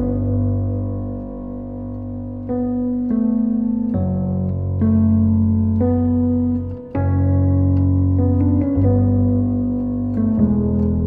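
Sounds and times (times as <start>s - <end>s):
piano playing slow chords: 0.0s - 11.0s.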